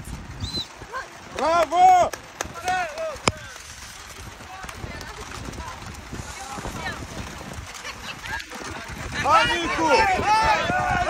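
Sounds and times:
spectators shouting: 8.9s - 11.0s.

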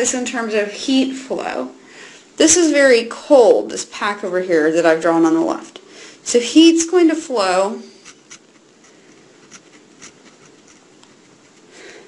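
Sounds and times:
pen scratching on paper: 8.0s - 11.7s.

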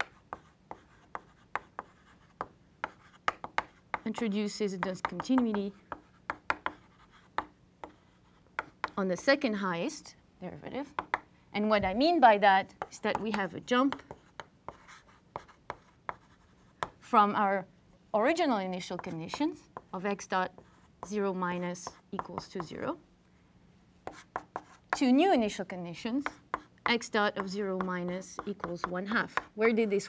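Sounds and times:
chalk scratching on blackboard: 0.0s - 4.0s
chalk tapping on blackboard: 0.0s - 4.1s, 4.8s - 9.0s, 11.0s - 11.3s, 12.8s - 17.0s, 20.5s - 22.8s, 24.0s - 25.0s, 26.2s - 29.5s.

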